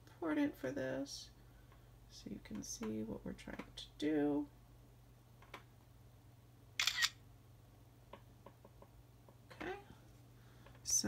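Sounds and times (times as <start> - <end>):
camera shutter double click: 6.8 - 7.2.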